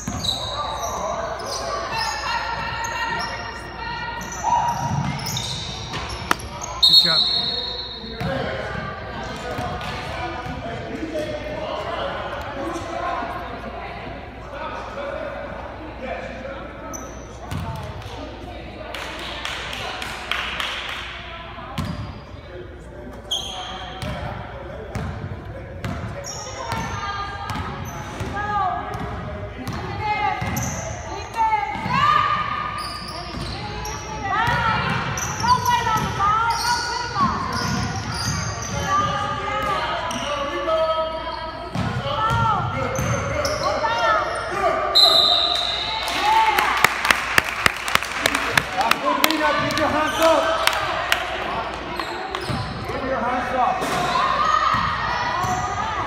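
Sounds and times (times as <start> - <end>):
sneaker squeaks: 0.0 - 8.5, 16.9 - 17.8, 21.8 - 22.5, 23.1 - 24.2, 25.8 - 28.4, 29.7 - 31.2, 31.8 - 46.1, 49.6 - 50.7, 51.6 - 53.1, 53.8 - 56.0
voices echoing: 0.0 - 56.0.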